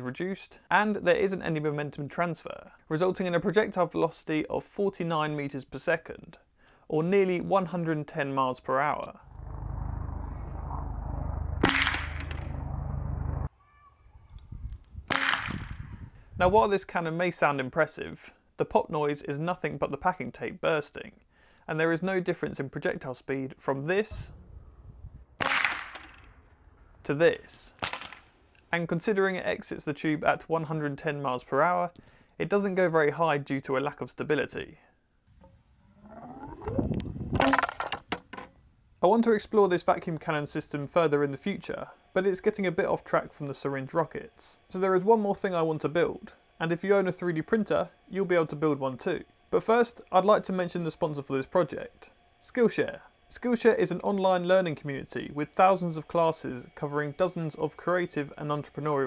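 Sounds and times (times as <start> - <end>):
steady low hum: 8.8 - 13.5, 38.8 - 59.0
short burst of noise: 9.2 - 13.5
vacuum cannon pop: 11.6 - 12.5, 15.1 - 15.8, 25.4 - 26.4.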